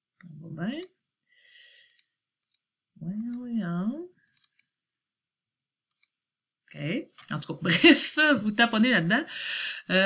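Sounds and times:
computer mouse clicking: 0.2s - 1.0s, 1.8s - 3.5s, 4.2s - 4.8s, 5.8s - 6.2s.

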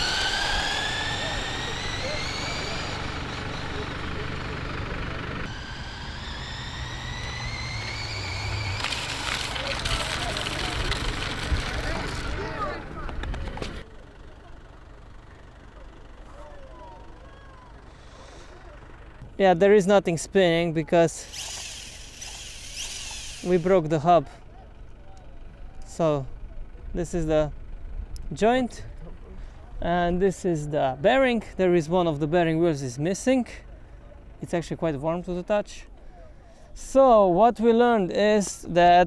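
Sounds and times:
electric motor whining: 0.0s - 13.8s, 21.2s - 23.9s
wheels rushing on asphalt: 0.0s - 19.6s, 21.0s - 32.6s.

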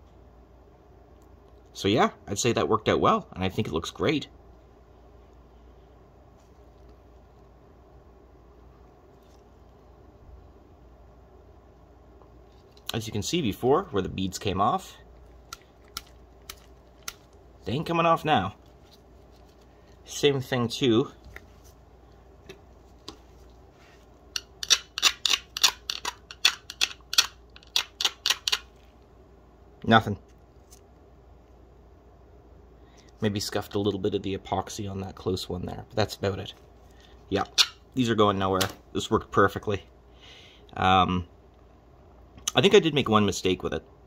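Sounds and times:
steady low hum: 0.0s - 44.0s
gloved hands clicking and rustling: 15.2s - 20.1s, 24.3s - 28.9s
metal pick scraping beadwork: 24.3s - 28.7s.

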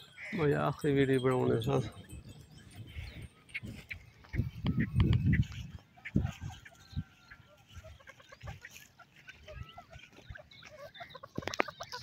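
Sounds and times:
birds clucking and chirping: 0.0s - 12.0s.

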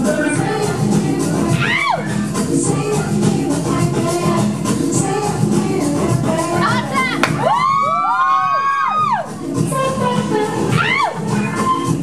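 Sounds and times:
people whooping: 7.2s - 9.3s, 10.7s - 12.0s.

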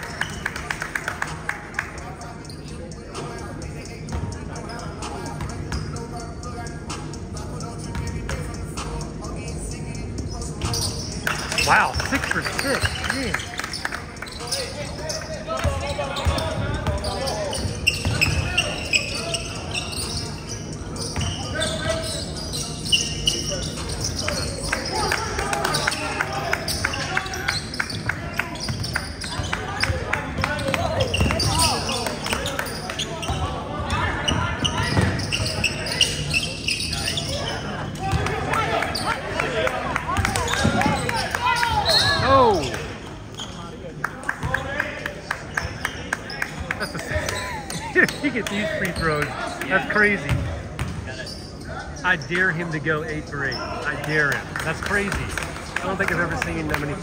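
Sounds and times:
players' voices echoing: 0.0s - 57.0s.

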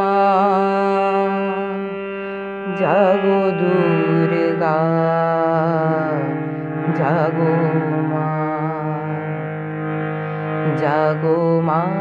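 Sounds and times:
man singing: 0.0s - 9.6s, 10.6s - 12.0s
harmonium chord: 0.0s - 12.0s.

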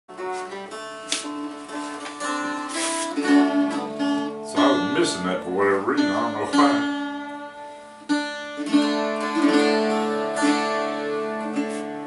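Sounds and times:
mandolin strumming: 0.1s - 12.0s
mountain dulcimer: 0.1s - 12.0s.

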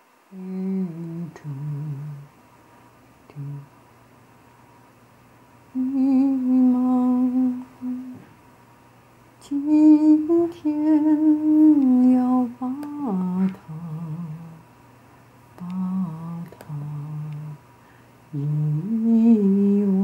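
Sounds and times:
woman humming: 0.3s - 2.3s, 3.3s - 3.7s, 5.8s - 8.3s, 9.4s - 14.6s, 15.6s - 17.6s, 18.3s - 20.0s.

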